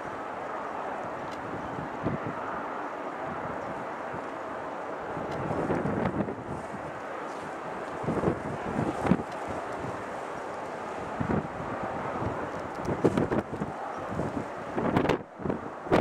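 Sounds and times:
distant jet engines: 0:00.0 - 0:16.0
wind buffeting the microphone: 0:00.0 - 0:16.0.

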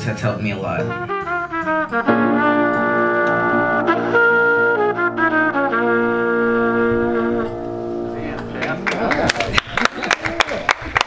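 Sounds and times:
piano accompaniment: 0:00.8 - 0:10.4
trumpet playing long notes: 0:00.9 - 0:08.9.

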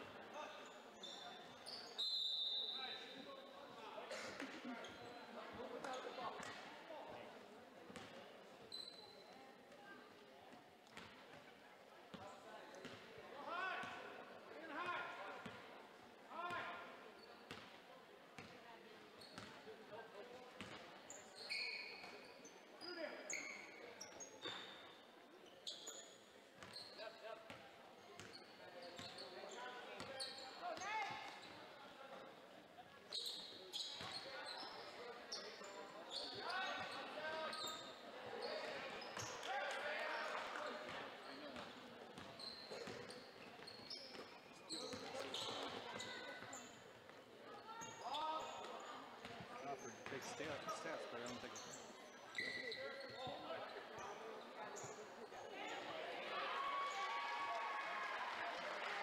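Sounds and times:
sneaker squeaks: 0:00.4 - 0:03.2, 0:04.3 - 0:06.7, 0:08.0 - 0:09.4, 0:19.1 - 0:19.7, 0:20.6 - 0:27.6, 0:28.2 - 0:31.8, 0:33.0 - 0:55.9.

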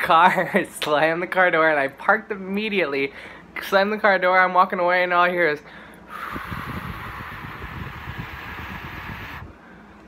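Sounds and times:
man hissing with his mouth: 0:06.1 - 0:09.5.

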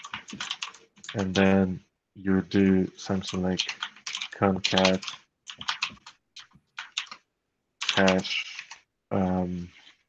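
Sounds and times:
computer keyboard typing: 0:00.0 - 0:01.6, 0:03.1 - 0:08.9.

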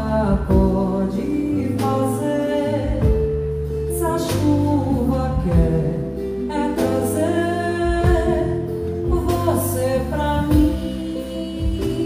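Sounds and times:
drums: 0:00.0 - 0:12.0
guitar: 0:00.0 - 0:12.0
woman singing into a microphone: 0:00.0 - 0:12.0.

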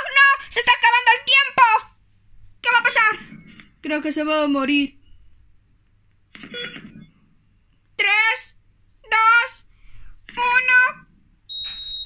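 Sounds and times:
heart monitor flatline beep: 0:06.5 - 0:07.2, 0:11.5 - 0:12.0.

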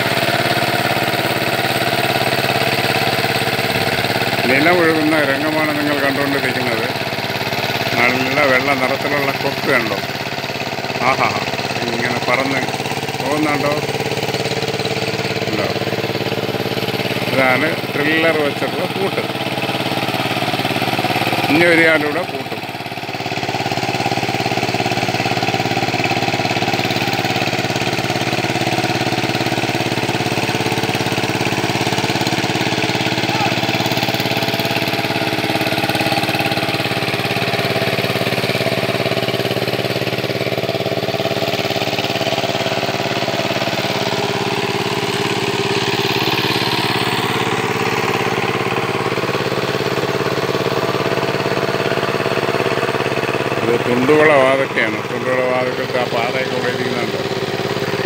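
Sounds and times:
power tiller engine running: 0:00.0 - 0:58.0.

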